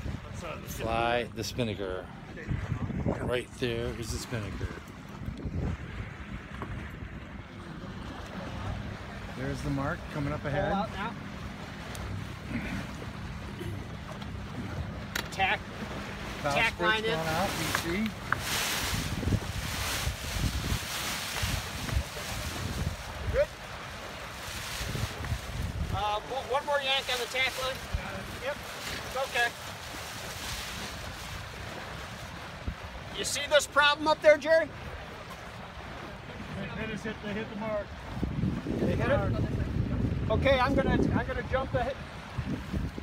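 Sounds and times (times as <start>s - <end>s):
wind rumbling on microphone: 0.0s - 13.0s, 13.8s - 33.2s, 34.8s - 43.0s
water washing along hull: 0.0s - 43.0s.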